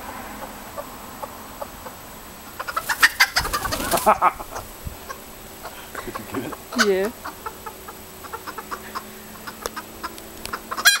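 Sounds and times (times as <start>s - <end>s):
hens clucking: 0.0s - 11.0s
loud sharp hen call: 0.0s - 11.0s.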